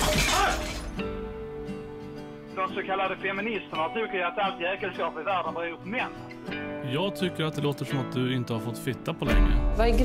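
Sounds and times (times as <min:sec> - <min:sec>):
loud crash with shattering: 0:00.0 - 0:01.0
background music steady note: 0:00.5 - 0:10.0.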